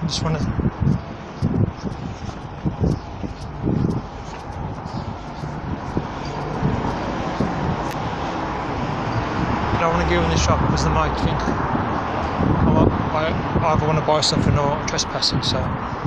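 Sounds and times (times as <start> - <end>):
dull low thumps: 0.0 - 13.6
traffic hum: 0.0 - 16.0.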